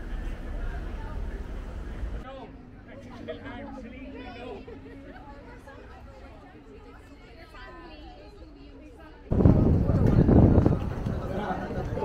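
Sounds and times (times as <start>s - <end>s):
low street rumble: 0.0s - 12.0s
passersby chatting: 0.0s - 12.0s.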